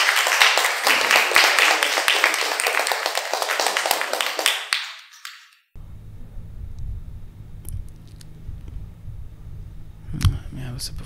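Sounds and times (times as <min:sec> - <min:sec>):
audience applauding: 0:00.0 - 0:05.7
low steady hum: 0:05.8 - 0:11.0.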